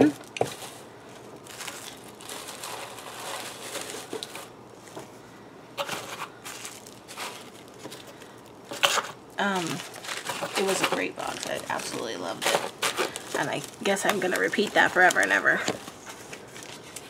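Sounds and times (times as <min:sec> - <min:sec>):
shredded paper rustling in a box: 0:00.0 - 0:04.5, 0:05.8 - 0:17.0.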